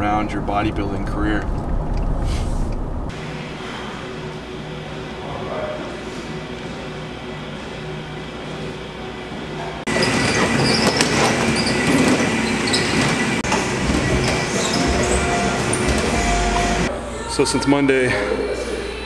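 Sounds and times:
machine whine: 2.8 - 17.5
stepmill mechanical clatter: 9.8 - 16.9
footsteps on stairs: 9.9 - 16.9.

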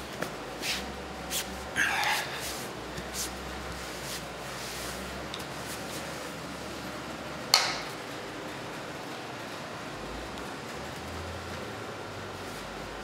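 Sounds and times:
room hiss: 0.0 - 7.2.

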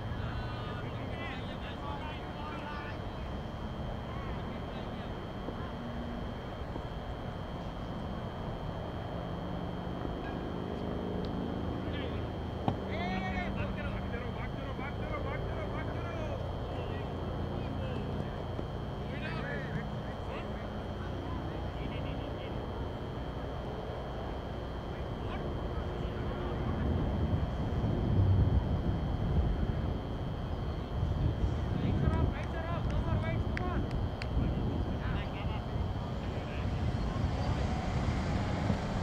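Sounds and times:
distant shouts and chatter: 0.0 - 11.0, 30.4 - 39.0
constant high tone: 0.0 - 27.7, 28.9 - 39.0.

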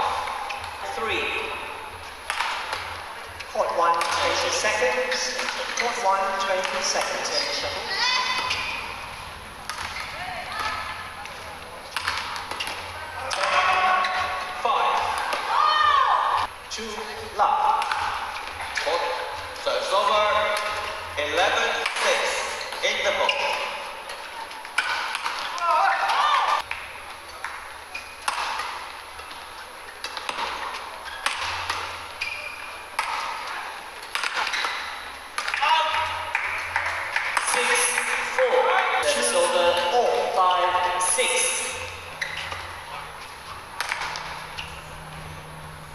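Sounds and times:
shoes squeaking on court: 1.9 - 16.5, 17.9 - 45.8
rackets hitting shuttlecock: 2.2 - 7.7, 9.6 - 15.6, 17.7 - 19.3, 19.9 - 40.9, 41.6 - 44.8
voices: 2.3 - 26.6.

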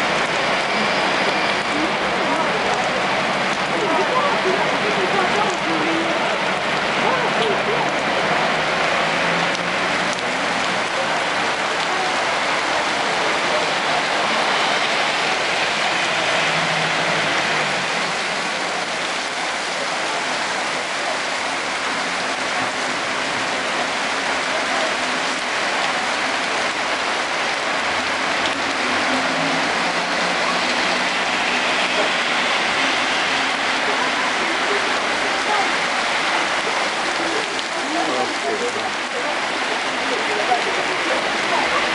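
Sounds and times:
heavy rain on pavement: 0.0 - 41.9.

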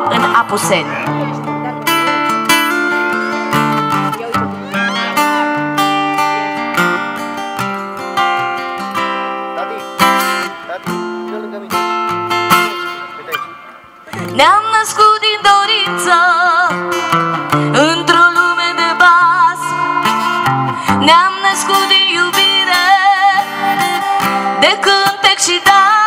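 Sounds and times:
acoustic guitar playing: 0.0 - 26.0.

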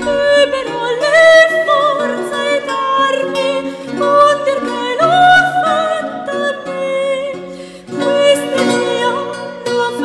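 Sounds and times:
plucked lute: 0.0 - 10.0
woman singing: 0.0 - 10.0.

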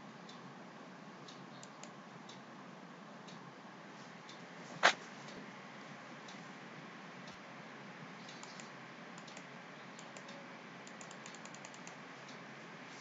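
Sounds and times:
steady background hiss: 0.0 - 13.0
faint computer clicking: 1.2 - 2.5, 8.2 - 12.5.

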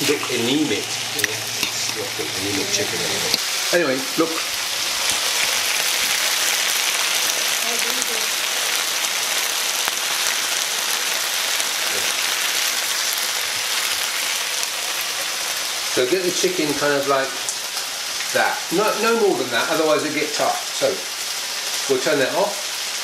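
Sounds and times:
chicken sizzling in a pan: 0.0 - 23.0.

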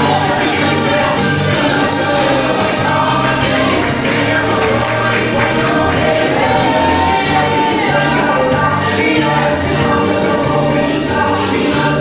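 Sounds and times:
group singing gospel song: 0.0 - 12.0.

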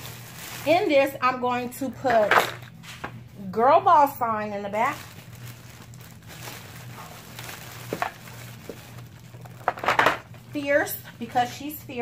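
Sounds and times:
cellophane bag crinkling: 0.0 - 1.3, 4.4 - 10.5
low steady hum: 0.0 - 12.0.

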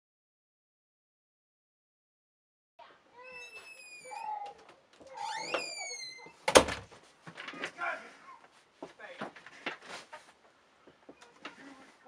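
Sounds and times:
door hinge creaking: 3.2 - 6.8.

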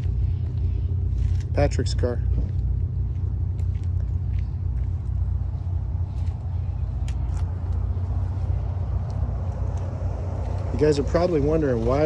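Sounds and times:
diesel pickup idling: 0.0 - 12.0.

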